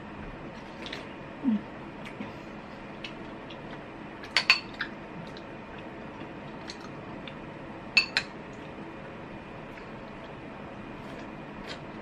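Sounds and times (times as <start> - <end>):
spoon clinking against glass bowl: 8.0 - 8.3.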